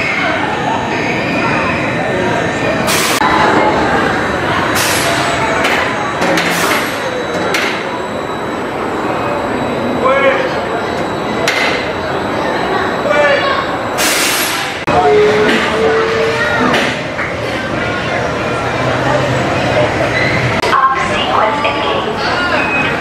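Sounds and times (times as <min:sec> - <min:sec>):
roller coaster rumbling: 0:00.0 - 0:23.0.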